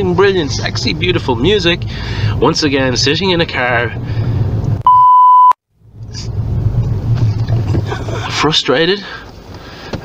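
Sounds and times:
car interior road rumble: 0.0s - 4.8s, 5.8s - 10.0s
censor bleep: 4.8s - 5.6s.

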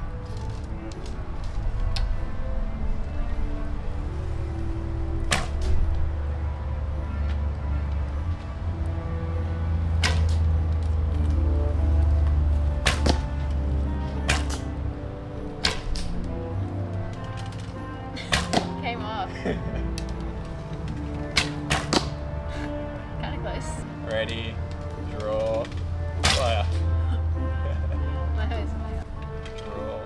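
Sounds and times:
arrows striking target: 5.2s - 5.8s, 10.0s - 10.5s, 12.8s - 13.4s, 14.2s - 14.7s, 15.6s - 16.2s, 18.2s - 18.8s, 21.3s - 22.2s, 26.2s - 26.8s
bowstrings snapping: 5.2s - 6.0s, 10.0s - 10.5s, 12.8s - 13.3s, 14.2s - 14.7s, 15.6s - 16.4s, 17.1s - 18.8s, 20.9s - 22.2s, 25.6s - 26.9s.

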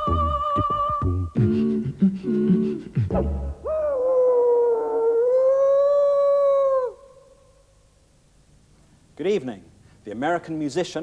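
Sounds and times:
wolf howling: 3.6s - 7.4s.

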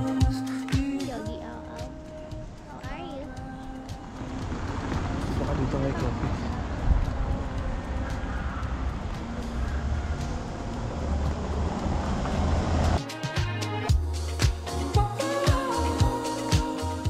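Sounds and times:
voices: 0.0s - 11.5s
steady rumbling noise: 1.1s - 13.0s
traffic: 1.1s - 13.9s.

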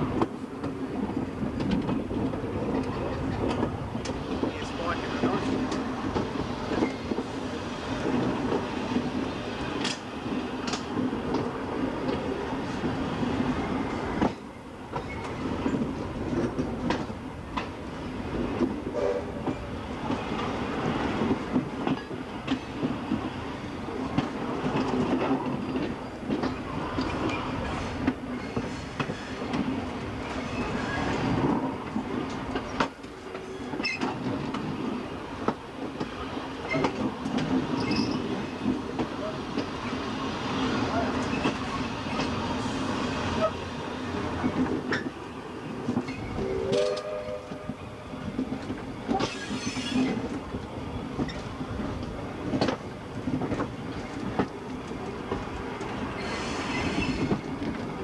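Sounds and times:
train wheels rumbling on rail: 0.0s - 58.0s
brief pitched note: 46.4s - 47.8s.

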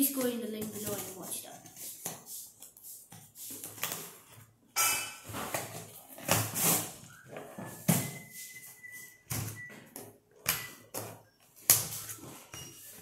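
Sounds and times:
packing tape ripping off cardboard: 5.5s - 7.1s.

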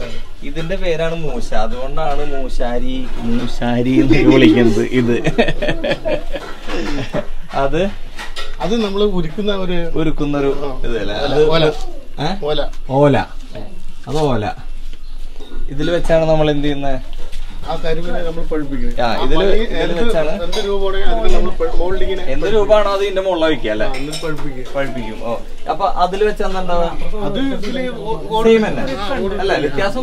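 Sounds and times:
people talking: 0.0s - 8.0s, 8.6s - 14.6s, 17.6s - 30.0s
man talking: 2.8s - 6.1s.

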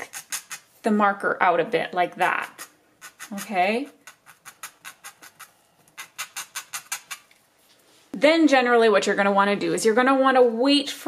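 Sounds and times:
tool scratching across fabric: 0.0s - 0.8s, 2.2s - 7.3s.

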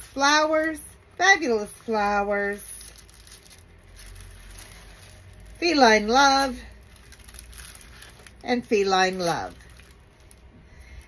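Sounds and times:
low room hum: 0.0s - 11.0s
plastic sleeves rustling: 0.0s - 11.0s.

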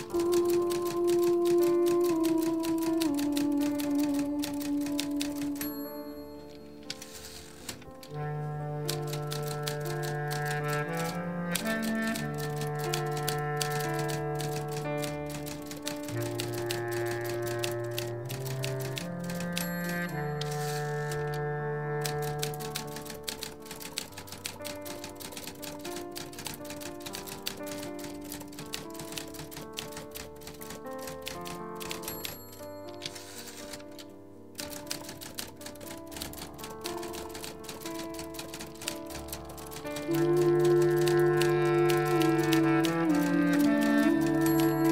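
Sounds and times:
bass clarinet low melody: 0.0s - 5.8s, 8.0s - 23.7s, 39.8s - 44.9s
instrumental music with held notes: 0.0s - 44.9s
typewriter keys clattering: 0.0s - 44.9s.

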